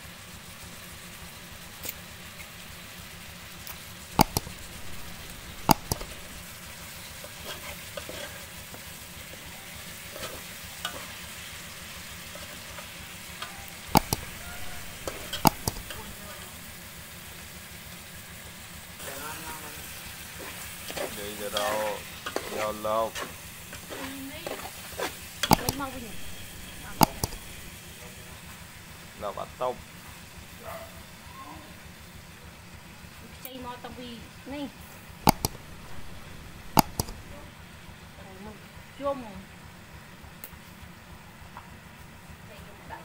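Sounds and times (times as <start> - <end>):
hiss of cooking: 0.0 - 43.0
low simmer: 0.4 - 29.2, 34.8 - 39.0
ladle scraping and clinking on pot: 7.3 - 8.5, 20.9 - 26.4.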